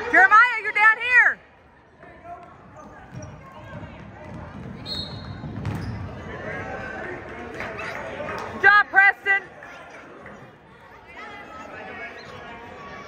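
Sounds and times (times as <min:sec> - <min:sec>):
hubbub of crowd: 0:00.0 - 0:13.0
shoe squeak: 0:03.1 - 0:03.6, 0:04.8 - 0:06.2
basketball bouncing on wooden floor: 0:03.1 - 0:06.0.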